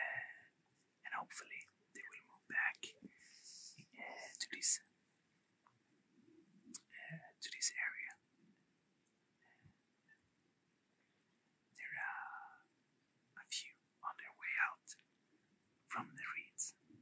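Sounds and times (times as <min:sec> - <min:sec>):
man whispering: 0:00.0 - 0:04.8, 0:06.7 - 0:08.2, 0:11.8 - 0:12.7, 0:13.4 - 0:15.0, 0:15.9 - 0:16.8.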